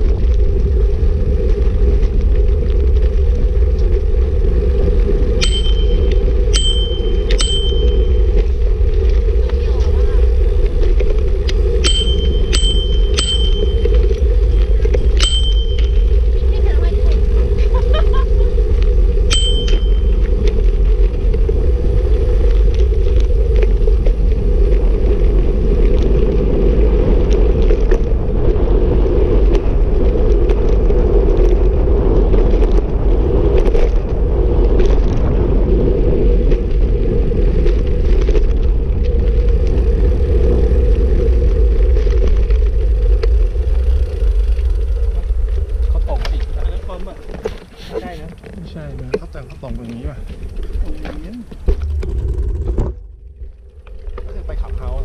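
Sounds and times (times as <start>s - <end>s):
bicycle road rumble: 0.0s - 55.0s
wind: 0.0s - 55.0s
bicycle bell ringing: 5.3s - 8.6s, 11.7s - 16.9s, 19.2s - 20.5s.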